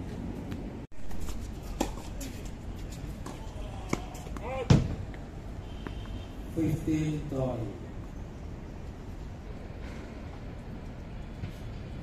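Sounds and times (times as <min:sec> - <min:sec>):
tennis ball bouncing on hard court: 0:03.1 - 0:05.2.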